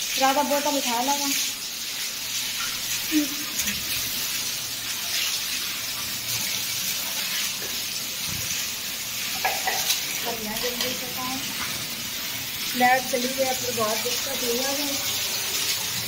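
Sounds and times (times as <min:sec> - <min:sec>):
running water hiss: 0:00.0 - 0:16.0.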